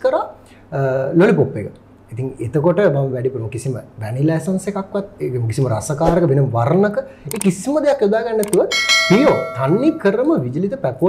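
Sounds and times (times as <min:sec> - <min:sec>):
person talking: 0:07.3 - 0:10.4
quick click: 0:08.4 - 0:08.7
bright bell chime: 0:08.7 - 0:10.2.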